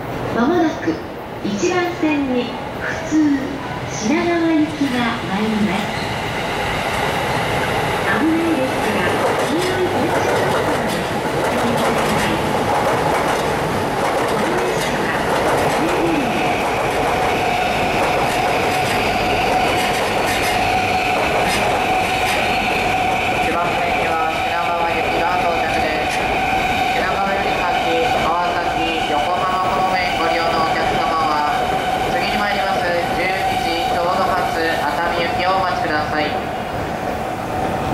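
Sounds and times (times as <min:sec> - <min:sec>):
steady train whine: 0:00.0 - 0:37.9
train wheels rumbling on rail: 0:02.8 - 0:37.9.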